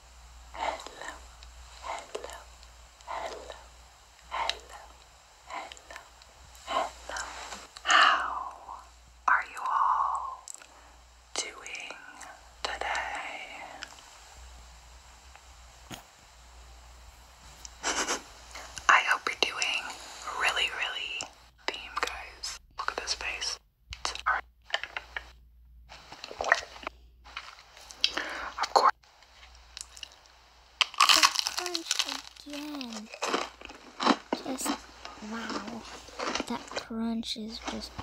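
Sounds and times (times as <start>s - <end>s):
soft voice sounds: 4.3s - 10.7s, 31.1s - 33.2s, 34.4s - 38.0s
crunchy chewing: 29.5s - 36.9s.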